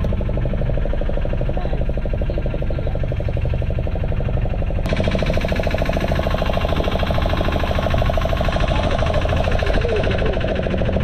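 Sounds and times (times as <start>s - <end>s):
boat engine pulsing: 0.0s - 11.0s.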